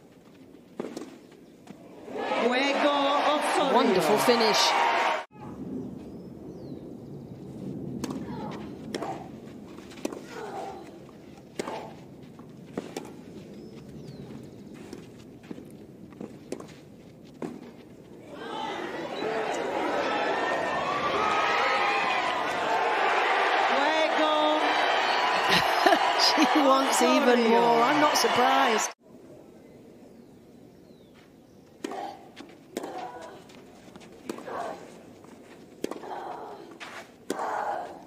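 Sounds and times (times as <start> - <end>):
crowd cheering and applause: 2.0 - 5.3, 18.3 - 29.0
racket striking tennis ball: 11.5 - 12.0, 35.8 - 36.1.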